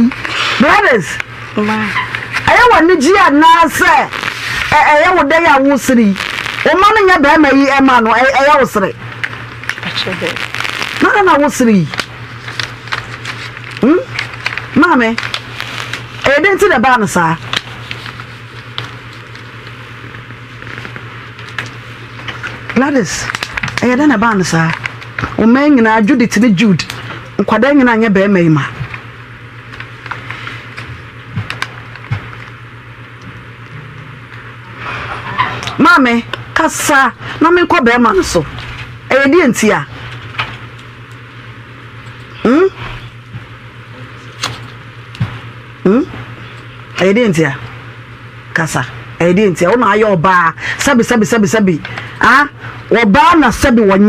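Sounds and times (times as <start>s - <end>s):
low electrical hum: 0.0s - 54.0s.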